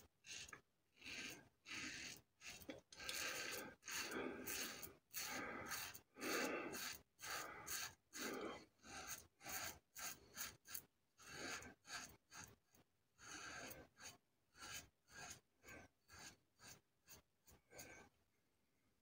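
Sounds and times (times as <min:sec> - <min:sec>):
razor scraping stubble: 0:00.2 - 0:12.6, 0:13.2 - 0:17.9.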